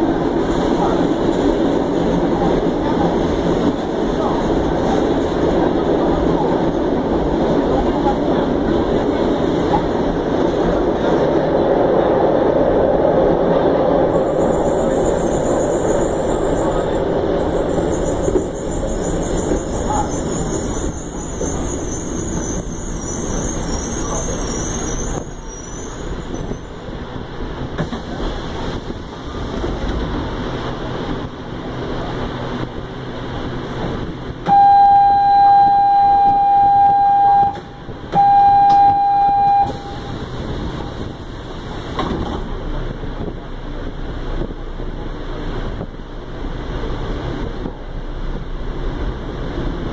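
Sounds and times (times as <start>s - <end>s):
subway train rumble: 0.0s - 49.9s
high-pitched metallic squeal: 14.2s - 26.8s
long electronic door beeps: 34.5s - 40.0s.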